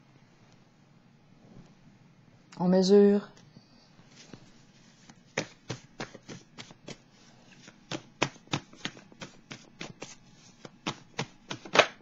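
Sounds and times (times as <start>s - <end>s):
cards being shuffled: 4.1s - 12.0s.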